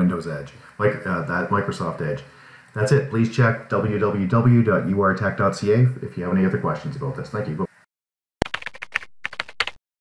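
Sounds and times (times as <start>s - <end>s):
computer keyboard typing: 8.4s - 9.8s.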